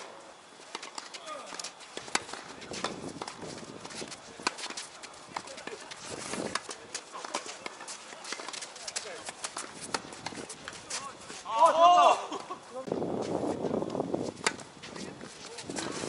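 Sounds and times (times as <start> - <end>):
tennis balls struck by rackets: 0.0 - 11.1, 14.3 - 16.0
players' footsteps: 0.0 - 16.0
player shouting: 11.5 - 12.4.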